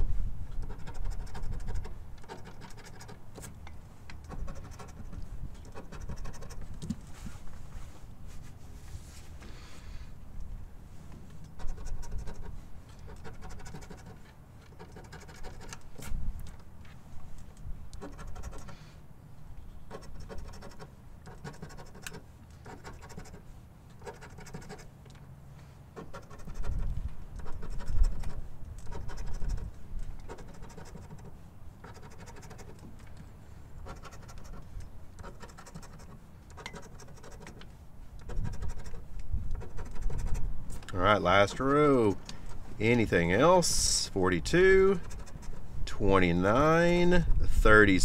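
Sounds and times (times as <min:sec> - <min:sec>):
coin scratching lottery ticket: 0:00.6 - 0:03.3, 0:04.2 - 0:06.7, 0:11.5 - 0:15.9, 0:18.0 - 0:18.9, 0:19.9 - 0:24.9, 0:26.0 - 0:32.9, 0:33.8 - 0:37.6, 0:38.2 - 0:40.5, 0:44.9 - 0:45.7.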